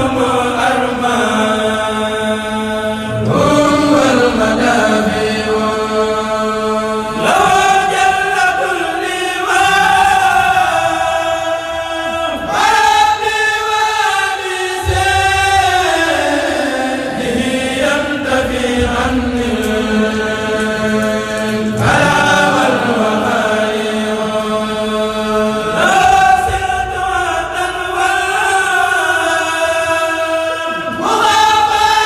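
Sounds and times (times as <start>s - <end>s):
men chanting unaccompanied: 0.0s - 32.0s.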